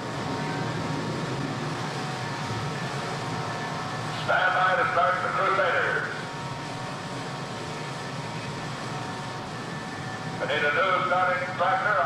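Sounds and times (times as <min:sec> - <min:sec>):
faint steady whine: 0:00.0 - 0:12.0
jet engines running: 0:00.0 - 0:12.0.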